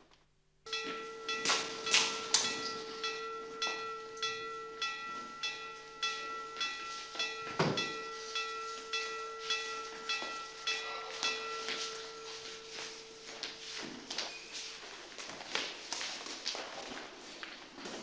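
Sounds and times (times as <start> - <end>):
handbell ringing: 0.7 - 14.9.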